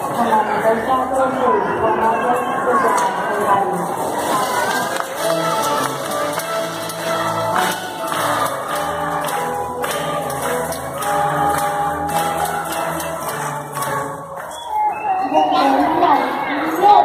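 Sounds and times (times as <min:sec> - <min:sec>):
string orchestra melody: 0:04.3 - 0:16.6
light percussion beat: 0:05.2 - 0:15.0.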